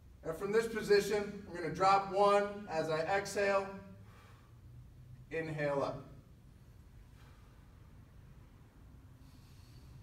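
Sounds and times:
man breathing faintly: 0:04.0 - 0:04.8, 0:07.0 - 0:08.0, 0:09.0 - 0:10.0.

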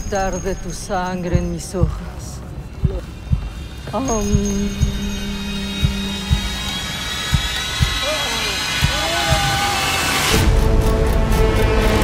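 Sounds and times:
steady hissing drone: 0:00.0 - 0:12.0
low thuds in pairs: 0:02.8 - 0:03.6, 0:05.8 - 0:08.0, 0:08.8 - 0:09.6.

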